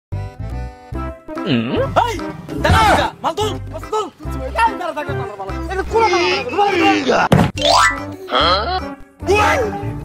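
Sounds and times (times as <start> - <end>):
backing music beat: 0.1 - 6.2
short vocal sound: 1.4 - 2.0.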